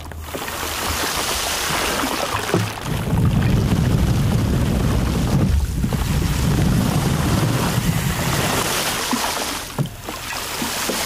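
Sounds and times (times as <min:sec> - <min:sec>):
water spray on wrapped microphone: 0:00.0 - 0:11.0
heavy low rumble: 0:02.7 - 0:08.6.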